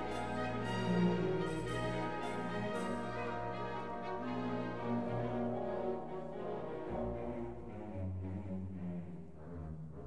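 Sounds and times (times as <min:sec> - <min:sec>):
orchestral music with held chords: 0:00.0 - 0:10.0.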